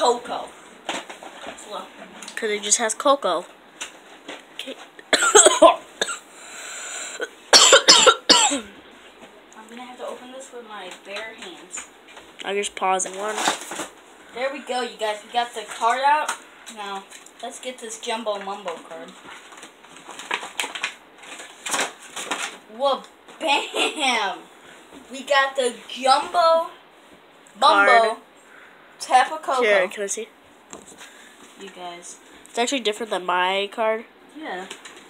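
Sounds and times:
boy coughing: 5.1 - 6.2, 7.0 - 8.7, 23.5 - 24.2
cardboard packaging rustling: 13.0 - 14.0, 18.7 - 22.7.

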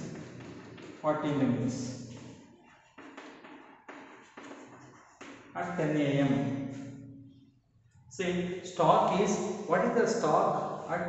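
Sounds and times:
chalk tapping and scraping on blackboard: 0.0 - 1.3, 2.1 - 5.8.

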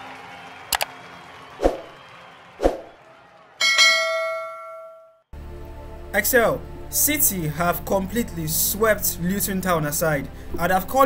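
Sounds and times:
bright bell-like chime: 3.6 - 5.2.

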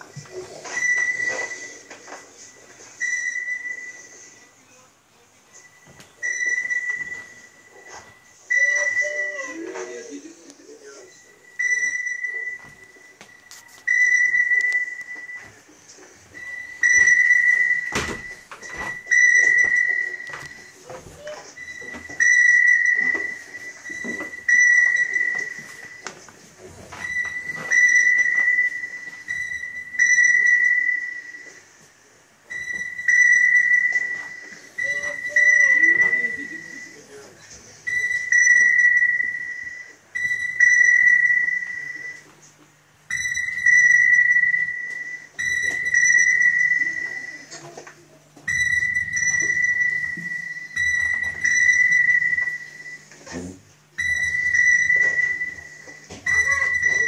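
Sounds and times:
high signal tone beeping: 0.1 - 4.3, 5.6 - 9.6, 10.8 - 15.6, 16.3 - 26.3, 26.9 - 31.7, 32.5 - 37.2, 37.8 - 42.3, 43.1 - 47.6, 48.5 - 57.0.

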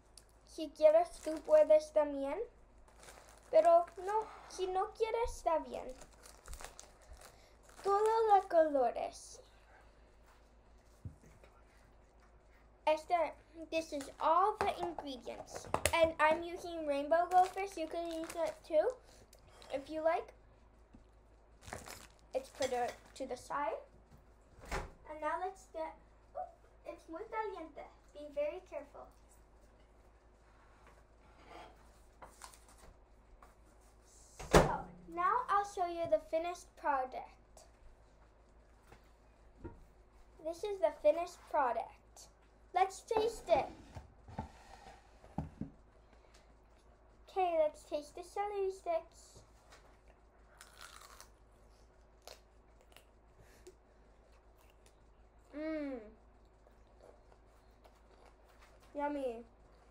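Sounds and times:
plastic snack bag crinkling: 1.0 - 1.9, 2.9 - 4.3, 5.8 - 8.6, 17.1 - 18.7, 21.6 - 23.2.

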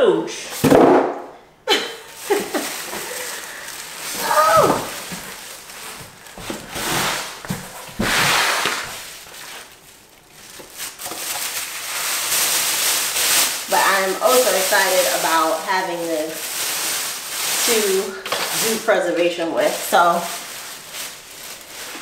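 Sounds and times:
plastic bag crinkling: 1.9 - 22.0.

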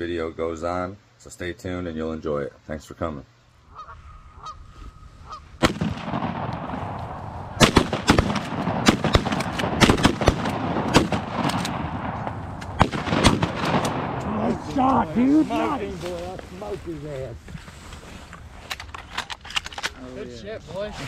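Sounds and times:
dry grass rustling: 3.6 - 21.0
shotgun shots: 5.6 - 14.8.

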